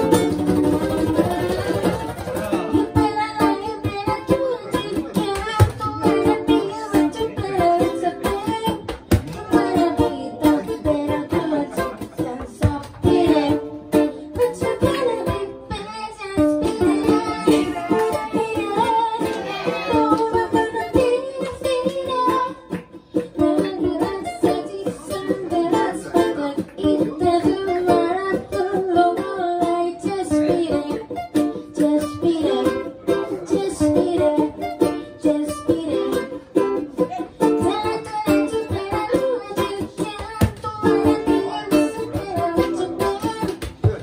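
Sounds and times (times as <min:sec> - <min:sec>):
ukuleles strumming: 0:00.0 - 0:44.0.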